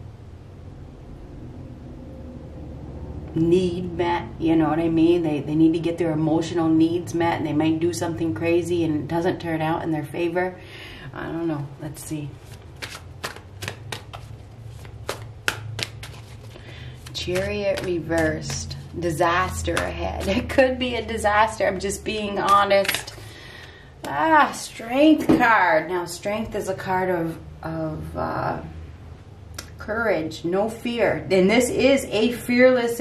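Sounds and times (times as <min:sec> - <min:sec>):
low hum: 0:00.0 - 0:12.8
low room rumble with hiss: 0:00.0 - 0:33.0
cards snapping: 0:12.4 - 0:18.9, 0:22.4 - 0:23.2.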